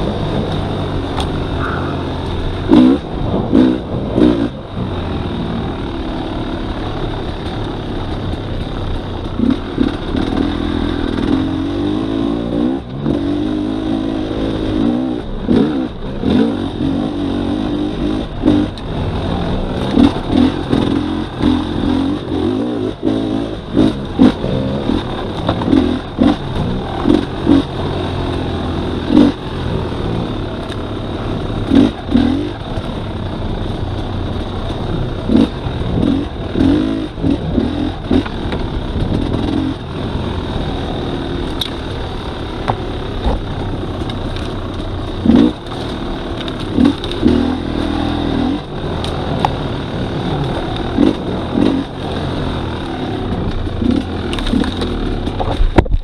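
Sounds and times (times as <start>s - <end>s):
dirt bike engine revving: 0.0s - 55.6s.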